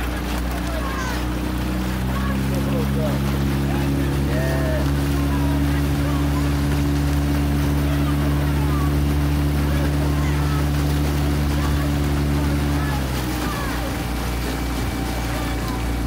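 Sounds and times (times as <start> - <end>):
outboard motor droning: 0.0 - 16.0
water along hull: 0.0 - 16.0.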